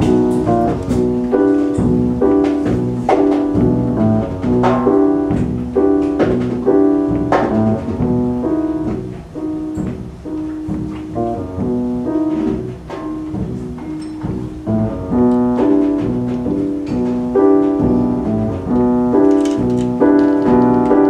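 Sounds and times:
grand piano repeating figure: 0.0s - 21.0s.

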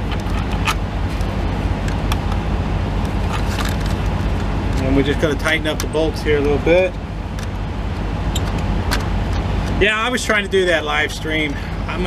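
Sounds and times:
vehicle engine idling: 0.0s - 12.0s
light clicks and taps: 3.0s - 9.8s.

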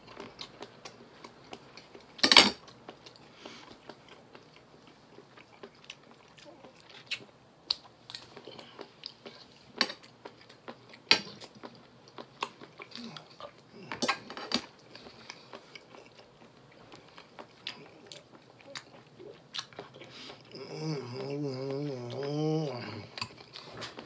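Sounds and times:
man chewing food: 0.0s - 24.0s.

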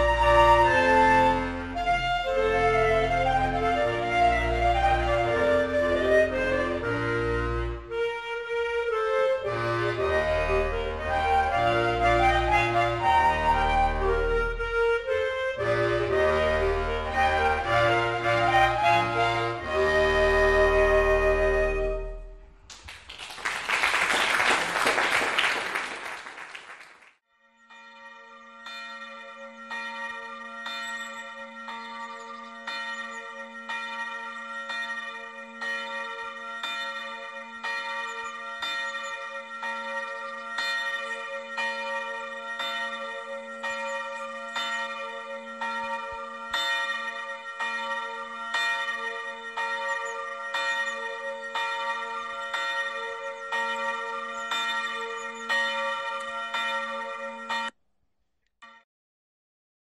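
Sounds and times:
church bells ringing: 0.0s - 8.2s, 8.8s - 22.5s, 27.4s - 57.8s.

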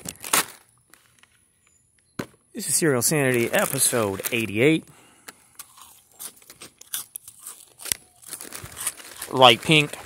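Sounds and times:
cereal pieces crunching: 2.6s - 10.0s
plastic bag crinkling: 2.6s - 10.0s.

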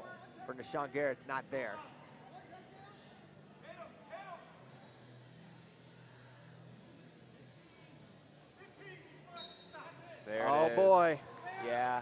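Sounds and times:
arena background hum: 0.0s - 9.4s.

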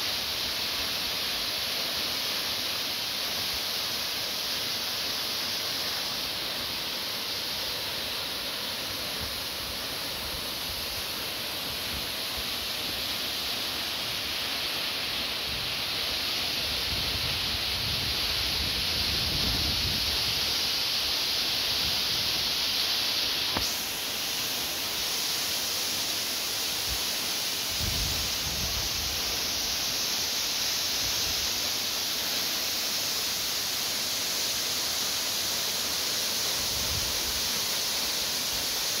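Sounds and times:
waterfall rushing hiss: 0.0s - 39.0s.

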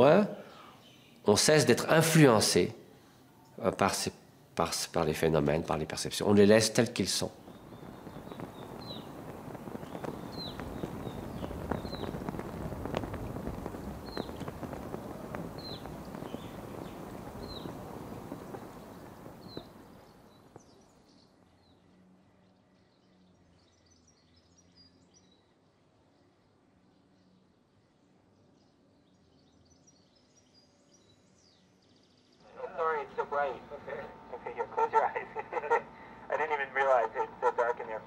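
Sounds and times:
wind: 0.0s - 38.0s
bird chirping: 7.2s - 27.6s.

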